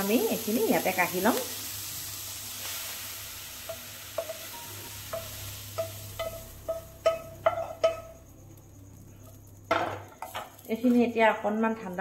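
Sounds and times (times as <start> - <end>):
faint sizzle: 0.0 - 12.0
spatula knocking on a pan: 3.7 - 8.2.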